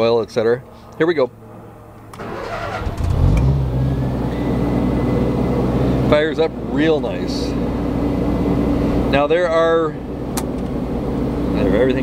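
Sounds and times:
generator engine starting and running: 0.7 - 12.0.

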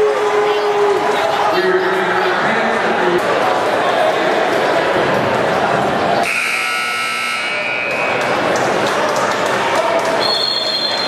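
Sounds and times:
crowd chatter: 0.0 - 11.0
scoreboard buzzer: 6.2 - 8.3.

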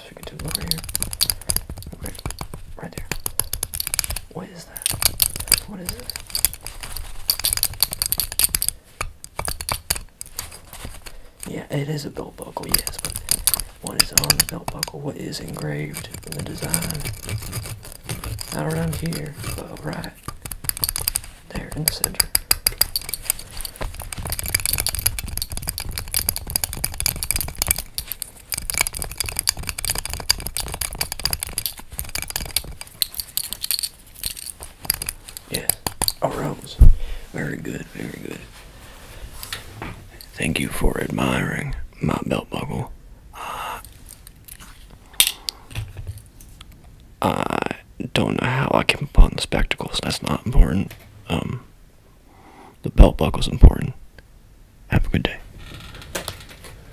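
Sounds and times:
fingernails tapping metal buckle: 0.3 - 11.2, 12.6 - 36.2.

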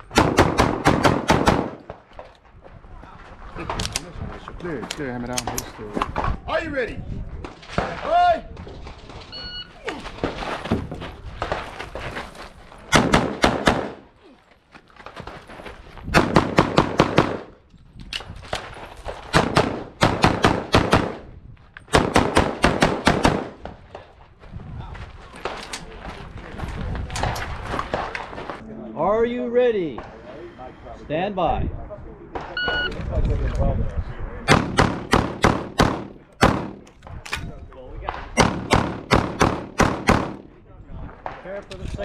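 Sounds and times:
pistol shots: 0.1 - 1.9, 12.9 - 14.0, 16.2 - 17.5, 19.3 - 21.2, 21.9 - 23.6, 34.5 - 36.8, 38.1 - 40.4.

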